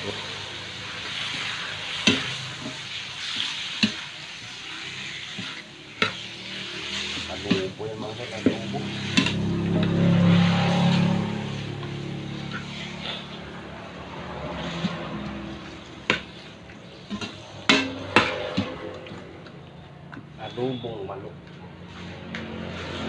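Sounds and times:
chicken sizzling in wok: 0.0s - 19.4s
metal spatula scraping wok: 0.0s - 20.0s, 21.8s - 23.0s.

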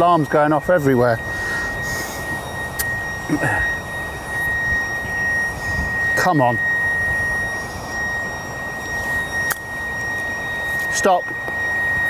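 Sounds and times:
high-pitched alarm tone: 0.0s - 12.0s
outdoor background noise: 0.0s - 12.0s.

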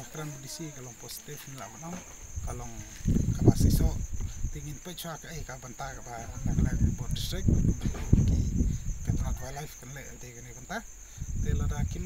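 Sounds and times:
high-pitched insect drone: 0.0s - 12.0s
man talking: 0.0s - 12.0s.

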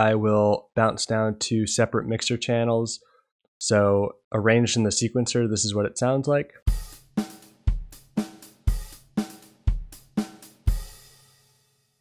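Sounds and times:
drum kit loop: 6.7s - 11.3s.

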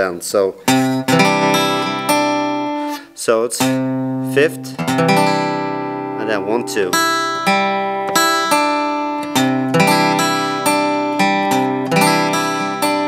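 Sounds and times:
acoustic guitar picking: 0.6s - 13.0s.

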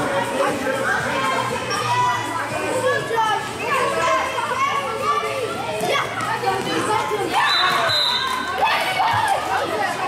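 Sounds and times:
children shouting: 1.1s - 10.0s.

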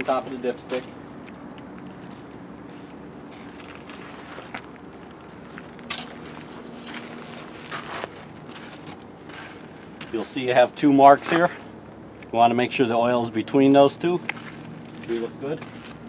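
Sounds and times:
faint background hum: 0.0s - 16.0s
leather jacket rustle: 1.9s - 10.4s.

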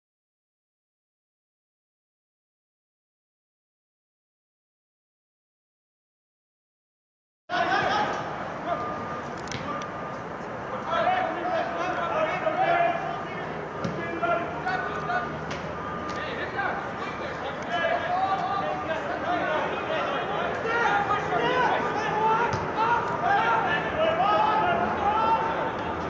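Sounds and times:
distant voices shouting: 7.5s - 26.0s.

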